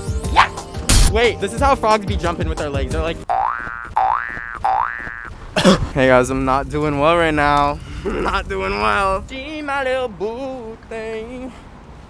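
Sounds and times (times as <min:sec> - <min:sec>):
cartoon boing sound effect: 0:03.3 - 0:05.3.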